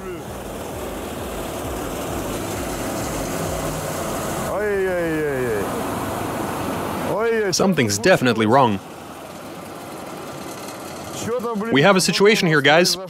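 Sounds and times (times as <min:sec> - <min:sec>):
car wheel spinning down: 0:00.0 - 0:12.7
car engine: 0:00.0 - 0:13.0.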